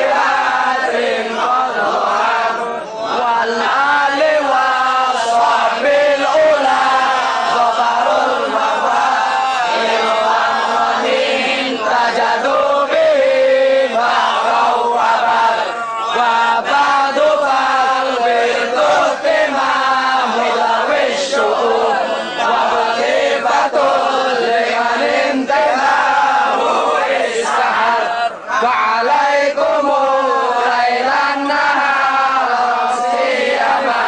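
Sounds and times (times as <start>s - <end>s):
men chanting devotional verses: 0.0s - 34.0s.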